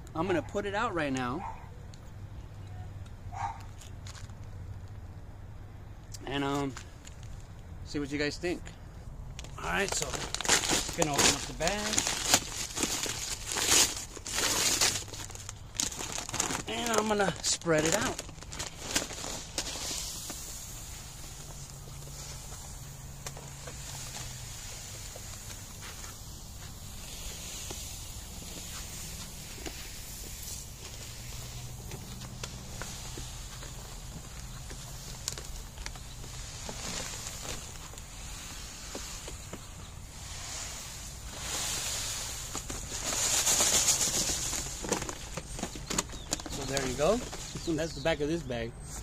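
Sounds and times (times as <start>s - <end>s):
clay granules pouring from bag: 9.6s - 31.8s, 32.4s - 47.2s.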